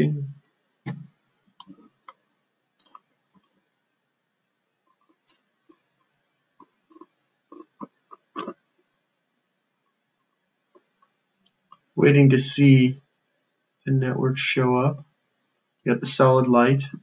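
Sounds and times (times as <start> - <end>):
faint clicks and taps: 0.4 - 3.7, 4.8 - 9.0.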